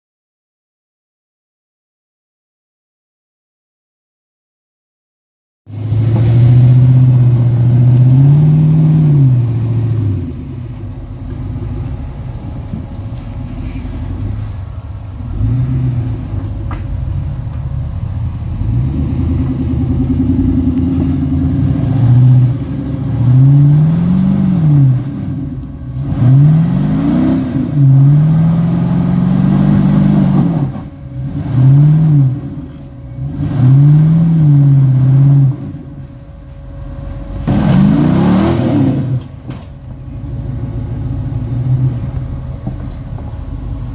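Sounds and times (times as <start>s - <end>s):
engine revving in throttle bursts: 5.7s - 10.8s, 13.4s - 16.7s, 18.0s - 36.0s, 37.4s - 39.5s.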